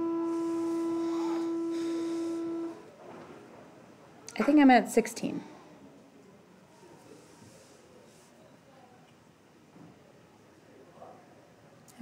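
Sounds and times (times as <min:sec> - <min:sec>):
steady electronic tone: 0:00.0 - 0:03.0.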